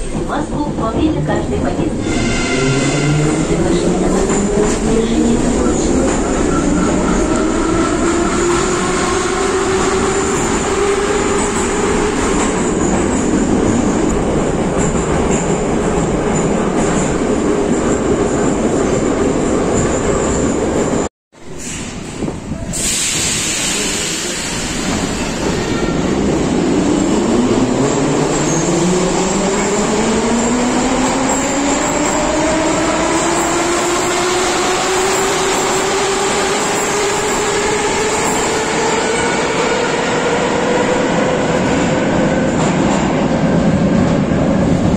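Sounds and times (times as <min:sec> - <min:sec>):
train pulling out of station: 0:00.0 - 0:44.9.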